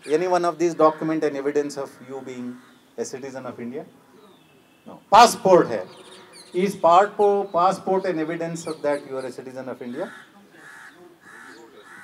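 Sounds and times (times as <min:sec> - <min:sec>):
crow cawing: 0:00.6 - 0:03.0, 0:09.8 - 0:12.0.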